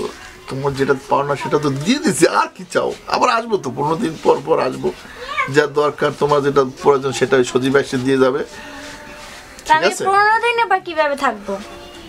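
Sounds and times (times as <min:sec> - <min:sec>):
people talking sing-song: 0:00.0 - 0:12.0.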